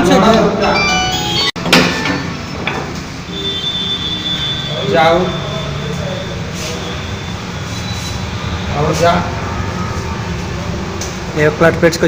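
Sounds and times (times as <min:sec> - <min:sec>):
background music: 0:00.0 - 0:02.2.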